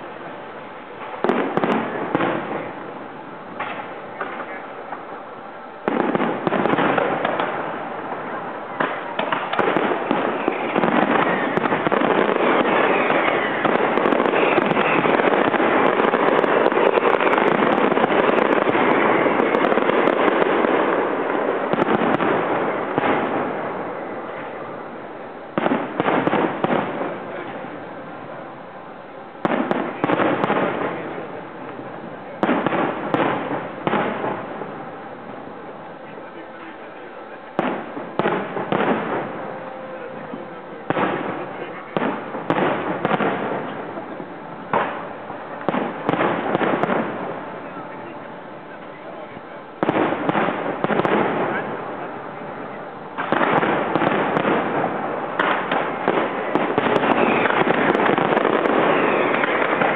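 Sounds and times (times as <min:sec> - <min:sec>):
fireworks bangs and crackling: 0:00.0 - 0:59.9.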